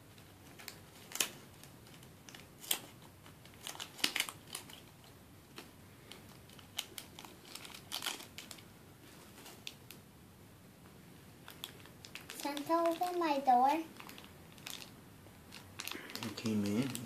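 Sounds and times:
plastic packaging crinkling: 0:00.2 - 0:10.0, 0:11.4 - 0:17.0.

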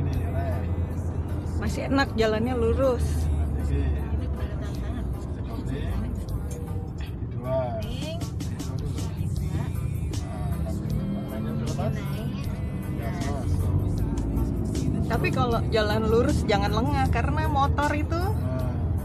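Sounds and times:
engine and road rumble: 0:00.0 - 0:19.0
faint music: 0:00.0 - 0:19.0.

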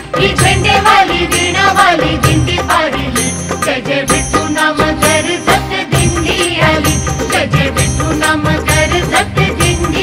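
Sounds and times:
rhythmic percussion: 0:00.0 - 0:10.0.

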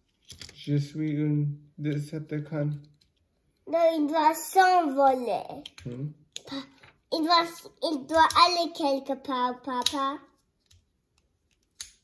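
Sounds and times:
plastic toy parts clicking: 0:00.1 - 0:00.6, 0:05.6 - 0:06.5, 0:08.2 - 0:08.6, 0:09.8 - 0:10.0, 0:10.6 - 0:12.0.

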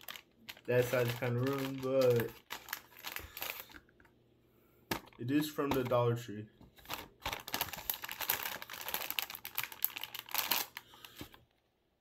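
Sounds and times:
plastic lantern clicking and crackling: 0:00.0 - 0:03.7.

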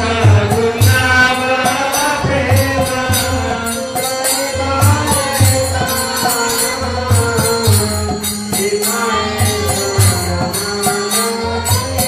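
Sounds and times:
jingling hand cymbals: 0:00.0 - 0:12.0
people chanting melody: 0:00.0 - 0:12.0.

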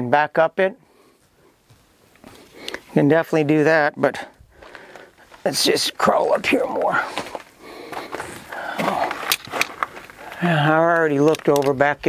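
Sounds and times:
feet and hands scuffing on stone: 0:01.2 - 0:02.9, 0:06.9 - 0:11.6.

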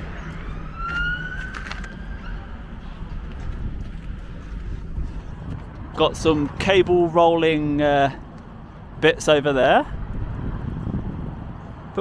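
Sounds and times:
distant siren wail: 0:00.0 - 0:03.0
low outdoor rumble: 0:00.0 - 0:12.0.

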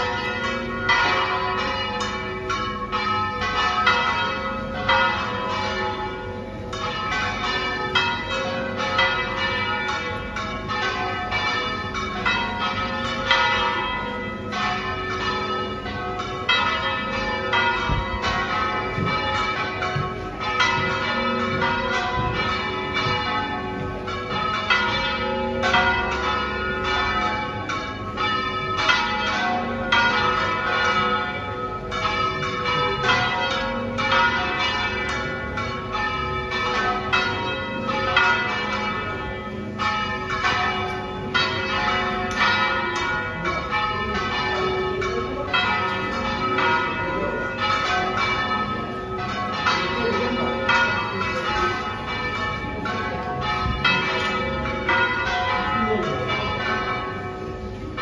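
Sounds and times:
church bells pealing: 0:00.0 - 0:58.0.

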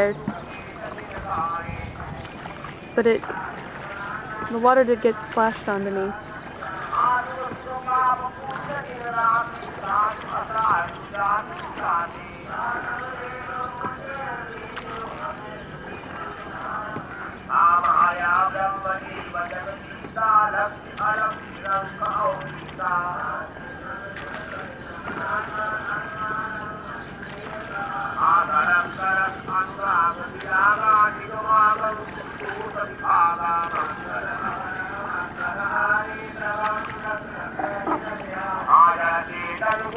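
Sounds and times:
indistinct human voices: 0:00.0 - 0:39.9.

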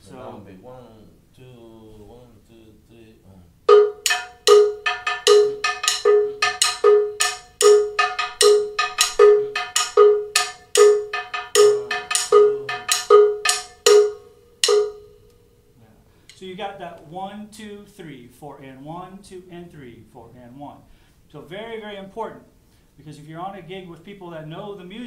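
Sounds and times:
bongo bell strokes: 0:03.7 - 0:15.4.

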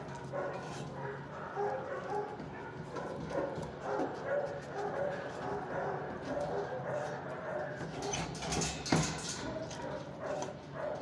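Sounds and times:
dogs barking and yelping: 0:00.0 - 0:11.0.

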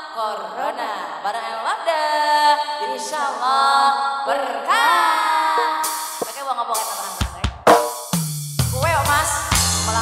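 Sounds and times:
drum kit fill with cymbal: 0:05.8 - 0:10.0
song: 0:07.7 - 0:08.1.

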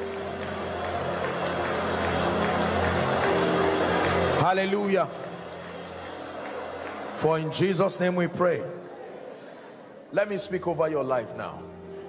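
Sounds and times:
church music chords: 0:00.0 - 0:08.9.

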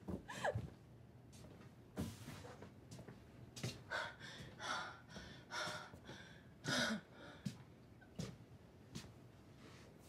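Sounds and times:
woman gasping for breath: 0:03.9 - 0:07.6.

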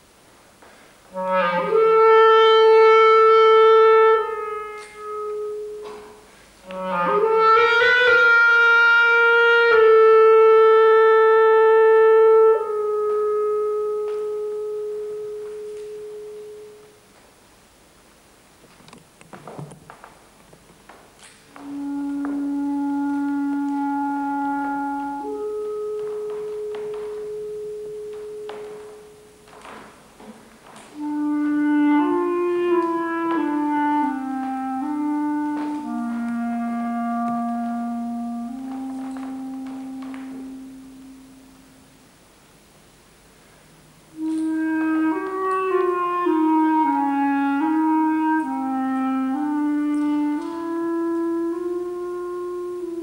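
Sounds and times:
clarinet long high note: 0:01.1 - 0:17.0, 0:21.5 - 0:42.1, 0:44.1 - 0:53.0.

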